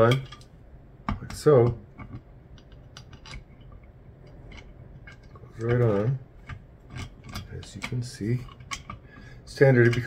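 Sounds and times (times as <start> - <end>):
faint metal clicks and taps: 0.1 - 10.0.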